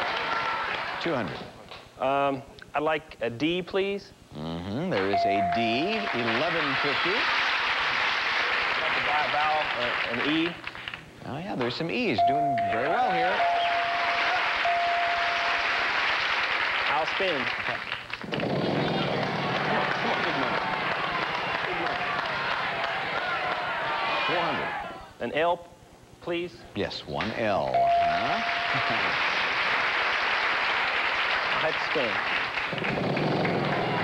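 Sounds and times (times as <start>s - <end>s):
audience applauding: 0.0s - 1.4s, 5.6s - 11.0s, 13.6s - 24.6s, 28.0s - 34.0s.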